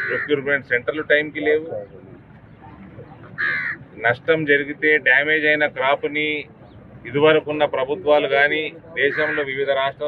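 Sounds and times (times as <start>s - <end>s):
crow cawing: 0.0s - 0.4s, 3.4s - 3.9s, 9.0s - 9.6s
faint outdoor background: 0.0s - 10.0s.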